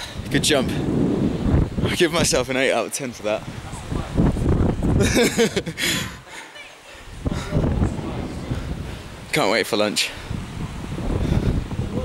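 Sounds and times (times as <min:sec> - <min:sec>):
wind buffeting microphone: 0:00.0 - 0:02.6, 0:03.3 - 0:06.3, 0:07.0 - 0:12.0.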